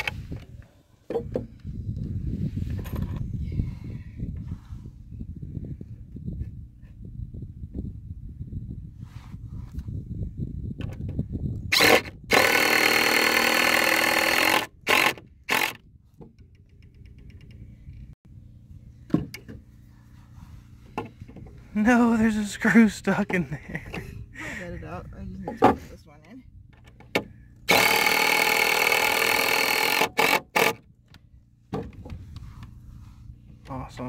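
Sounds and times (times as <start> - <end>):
impact driver driving screw: 11.7 - 15.8, 27.7 - 30.8.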